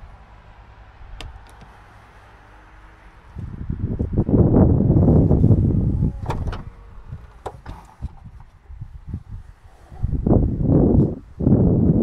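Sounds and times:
powered tailgate closing: 5.4s - 8.6s
tailgate latch clicks: 6.0s - 8.2s.

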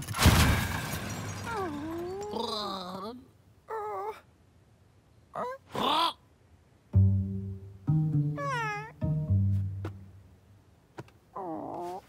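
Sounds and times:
low cello notes: 6.9s - 10.4s
cartoon character whimpering: 8.3s - 9.0s.

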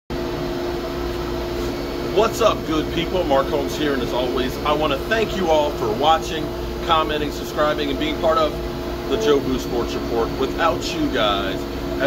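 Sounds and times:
workshop machinery humming: 0.1s - 12.0s.

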